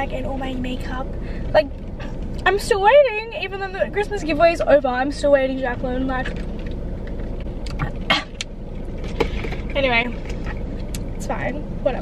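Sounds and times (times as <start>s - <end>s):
car engine hum: 0.0s - 12.0s.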